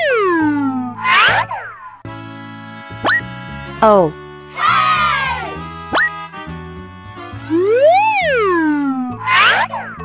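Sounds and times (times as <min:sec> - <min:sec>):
cartoon pitched glide effects: 0:00.0 - 0:02.0, 0:03.0 - 0:03.2, 0:05.9 - 0:06.2, 0:07.5 - 0:10.0
children's music backing: 0:02.1 - 0:10.0.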